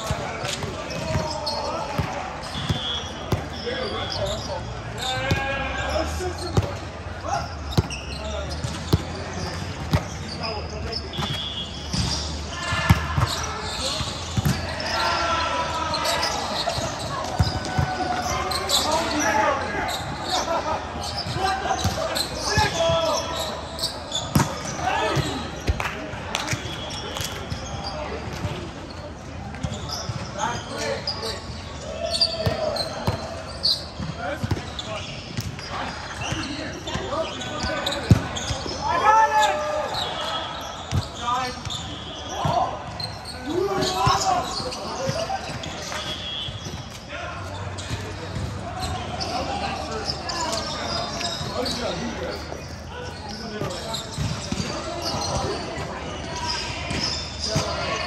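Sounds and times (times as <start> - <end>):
players calling and chatting: 0.0 - 58.0.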